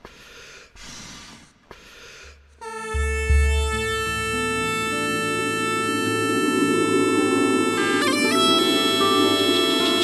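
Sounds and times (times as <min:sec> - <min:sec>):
breath blown into bagpipe: 0:02.3 - 0:10.0
bagpipe reedy note and drone: 0:02.6 - 0:10.0.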